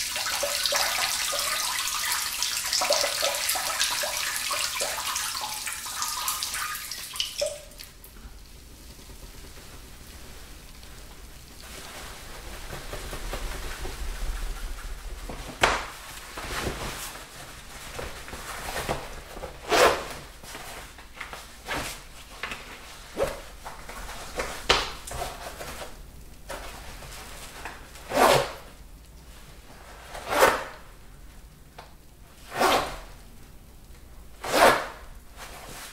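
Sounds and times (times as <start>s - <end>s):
urine splashing into toilet water: 0.0s - 11.9s.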